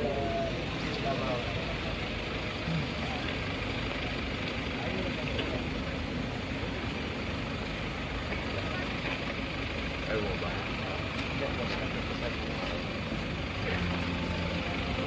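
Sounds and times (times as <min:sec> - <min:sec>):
faint voices: 0:00.0 - 0:15.0
steady background noise: 0:00.0 - 0:15.0.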